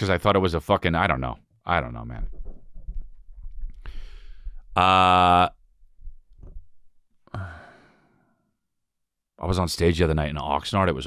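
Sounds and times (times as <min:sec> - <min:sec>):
man sighing heavily: 0:07.3 - 0:08.1.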